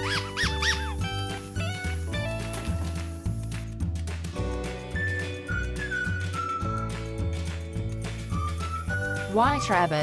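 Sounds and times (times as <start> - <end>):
squeaky dog toy squeaks: 0.0 - 1.3
children's background music: 0.0 - 10.0.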